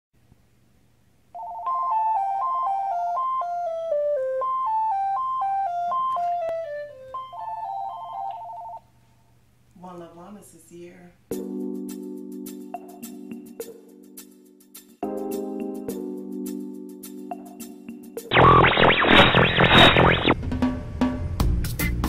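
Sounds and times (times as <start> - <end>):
cordless phone ringing: 1.4 - 3.6, 5.7 - 8.8.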